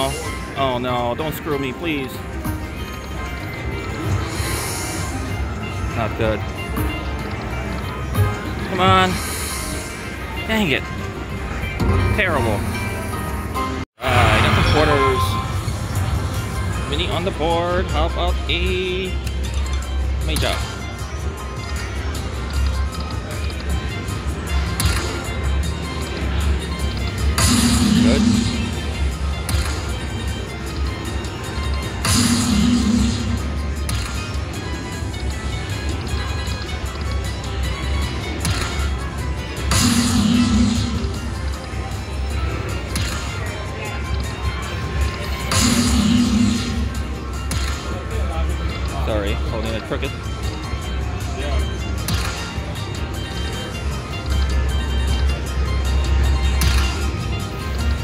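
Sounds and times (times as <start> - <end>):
slot machine bonus music: 0.0 - 58.0.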